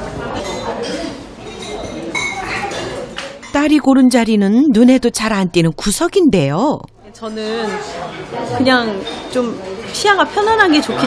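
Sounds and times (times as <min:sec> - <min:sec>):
indistinct voices: 0:03.5 - 0:07.2.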